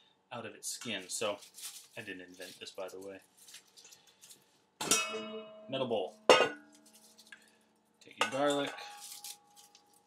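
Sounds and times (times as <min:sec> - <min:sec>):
faint handling sounds: 0:00.7 - 0:04.8, 0:06.1 - 0:10.0
metal bowl clanging and ringing: 0:04.8 - 0:06.8, 0:08.2 - 0:09.5.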